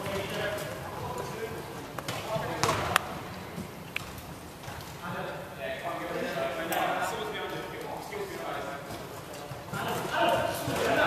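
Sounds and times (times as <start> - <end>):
players' voices echoing: 0.0 - 11.0.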